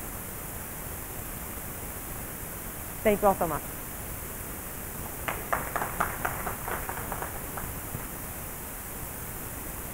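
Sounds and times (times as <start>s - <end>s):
steady hiss: 0.0s - 9.9s
audience clapping: 5.0s - 8.2s.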